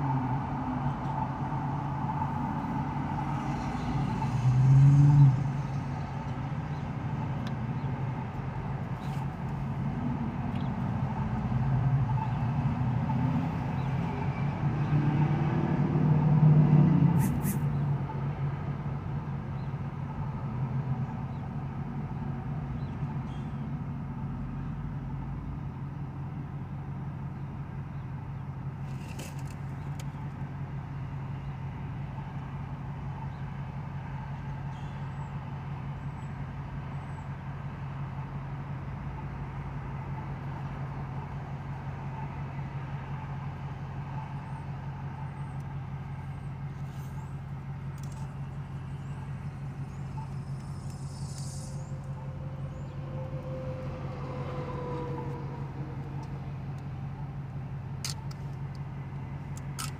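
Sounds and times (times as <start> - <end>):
car engine idling: 0.0 - 14.6, 18.4 - 59.9
faint traffic passing: 0.0 - 59.9.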